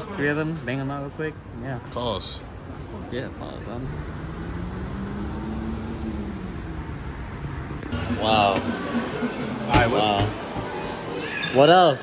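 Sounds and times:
vehicle engine rumble: 2.5 - 10.6.

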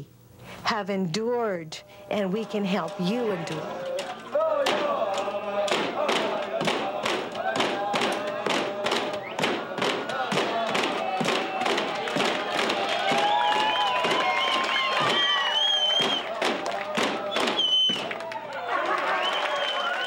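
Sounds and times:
group of voices singing: 2.1 - 13.1
frame drums beating: 2.7 - 18.1.

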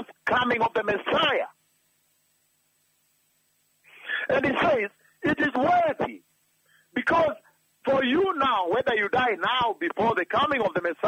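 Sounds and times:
man speaking on radio: 0.0 - 1.6, 4.2 - 6.2, 7.0 - 11.0.

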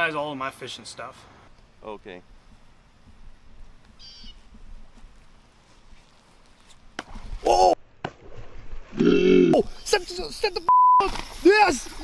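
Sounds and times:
person shouting: 7.4 - 7.8.

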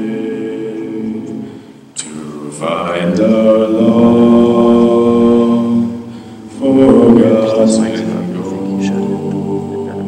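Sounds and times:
choir singing in close harmony: 0.0 - 10.0.

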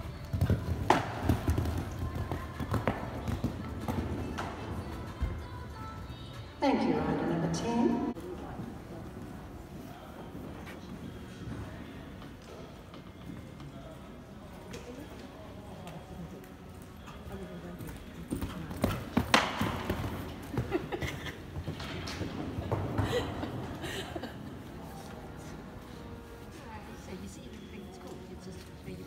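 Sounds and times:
horse hoofbeats on sand: 0.0 - 6.1, 17.0 - 23.7.

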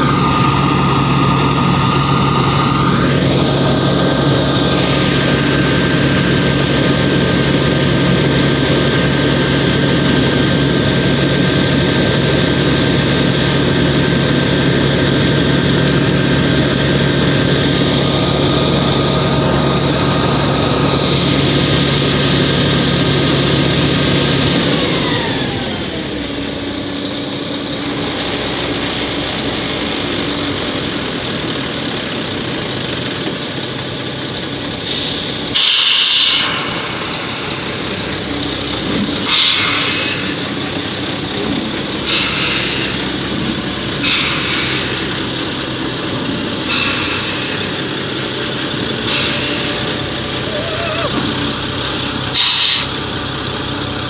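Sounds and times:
truck diesel engine revving: 0.0 - 54.0.

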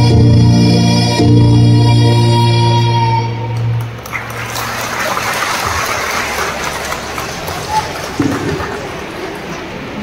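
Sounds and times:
audience applauding: 3.6 - 10.0.

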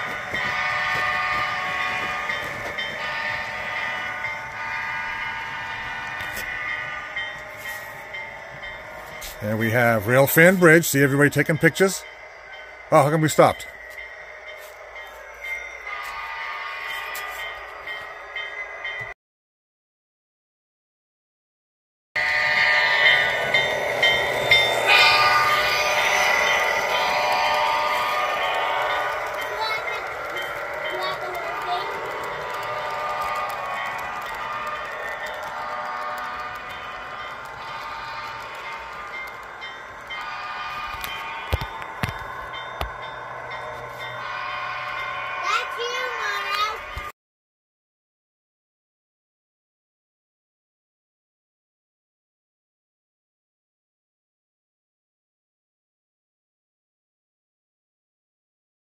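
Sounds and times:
model train whine: 0.0 - 19.1, 22.2 - 47.1
wheels clicking on rail joints: 0.0 - 19.1, 22.2 - 47.1.

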